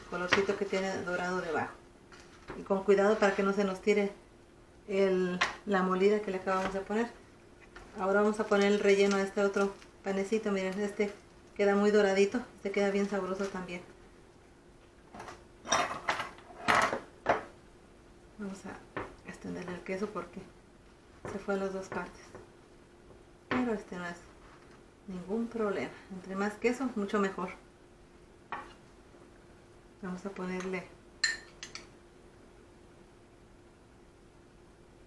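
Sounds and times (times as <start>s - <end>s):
kitchen utensils clattering: 15.6s - 17.0s
spoon clinking against bowl: 31.2s - 31.9s.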